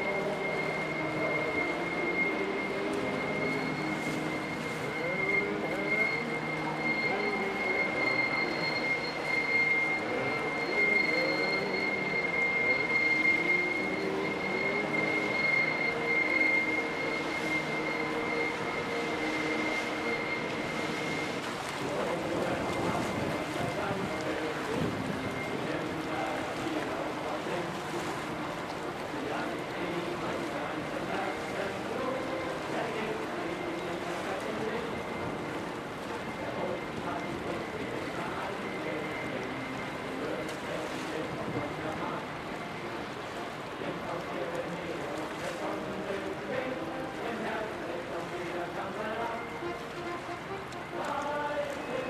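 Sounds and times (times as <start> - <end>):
high-pitched machinery whine: 0.0 - 43.0.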